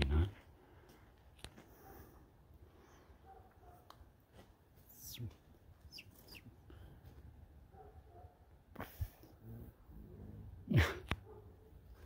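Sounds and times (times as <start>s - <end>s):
high bird calls: 5.9s - 6.5s.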